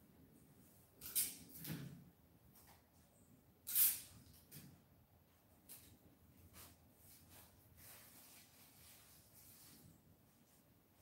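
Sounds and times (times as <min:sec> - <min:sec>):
brush swishing on paper: 0:06.5 - 0:11.0.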